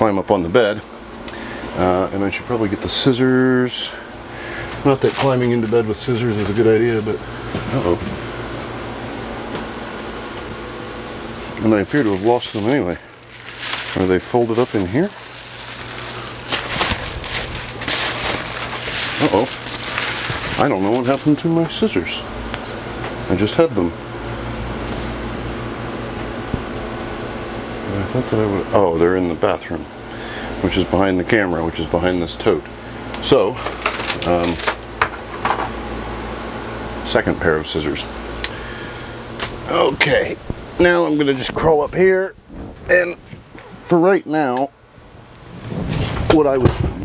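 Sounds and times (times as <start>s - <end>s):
air conditioner fan noise: 0.0s - 47.0s
steady low hum: 0.0s - 47.0s
foil insulation crinkling: 1.3s - 23.6s, 33.1s - 35.3s, 45.4s - 47.0s.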